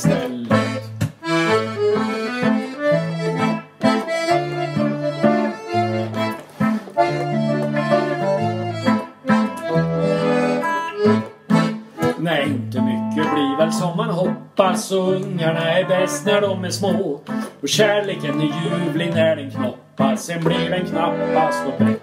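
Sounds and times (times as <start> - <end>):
button accordion melody: 0.0 - 22.0
electric guitar accompanying: 0.0 - 22.0.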